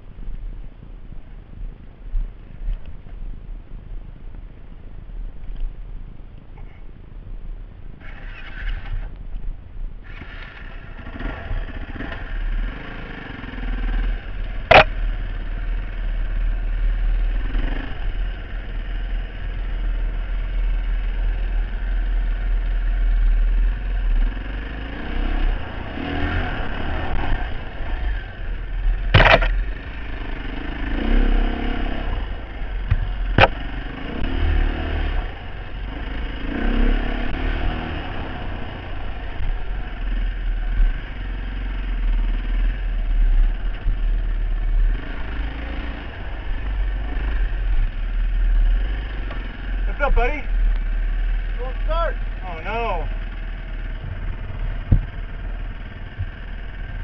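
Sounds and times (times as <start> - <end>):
low rumble on microphone: 0.0 - 8.1, 53.0 - 57.0
dirt bike engine revving: 10.1 - 57.0
sharp knocks: 29.1 - 29.6, 54.8 - 55.2.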